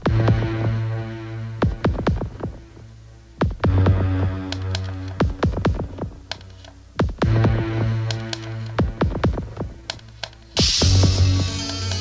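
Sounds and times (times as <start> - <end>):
electronic beat hits: 1.6 - 2.6, 3.4 - 6.4, 7.0 - 9.9, 10.6 - 12.0.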